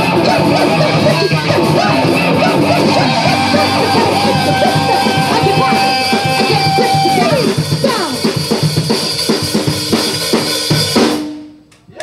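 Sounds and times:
loud noise rock band: 0.0s - 11.2s
drums hammering: 0.0s - 11.6s.

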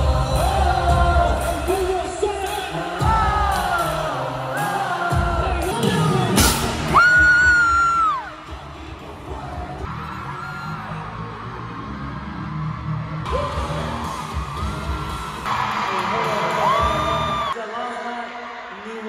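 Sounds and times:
pop music with singing: 0.0s - 19.0s
crowd cheering and screaming: 4.5s - 17.6s.

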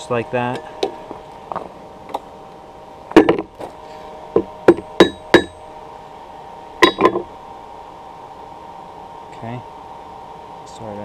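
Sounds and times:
hammer striking wire on an anvil: 3.1s - 3.5s, 4.4s - 5.6s, 6.8s - 7.3s.

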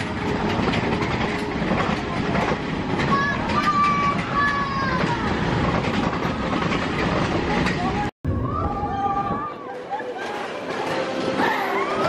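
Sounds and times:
roller coaster rumbling and clattering: 0.0s - 12.0s.

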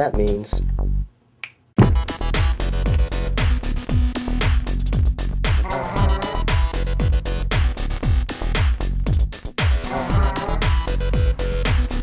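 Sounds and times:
finger snap: 1.4s - 1.7s, 2.4s - 3.5s.

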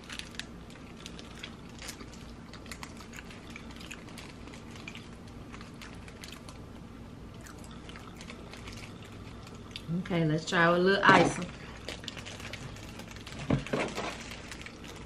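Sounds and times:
people chewing: 0.0s - 10.0s, 11.5s - 15.0s.

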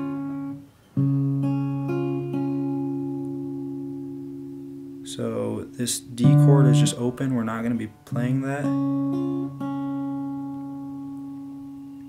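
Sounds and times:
acoustic guitar chord picked: 0.0s - 12.0s.

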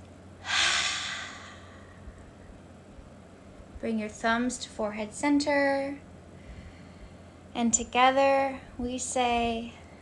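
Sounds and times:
woman sighing: 0.4s - 1.9s.

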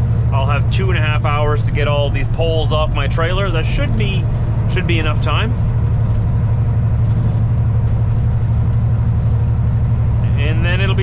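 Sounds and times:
truck diesel engine droning: 0.0s - 11.0s
man talking: 0.3s - 5.6s, 10.2s - 11.0s.

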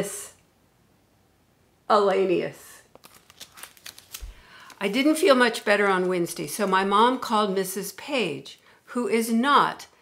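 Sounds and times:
book paper crackling: 2.9s - 7.1s.

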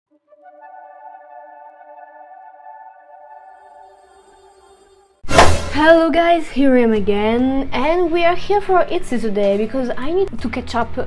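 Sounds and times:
held synthesizer chord: 0.1s - 5.3s.

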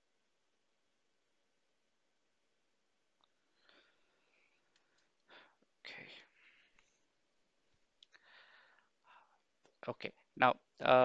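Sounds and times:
person breathing faintly: 3.5s - 7.1s, 8.1s - 9.4s.

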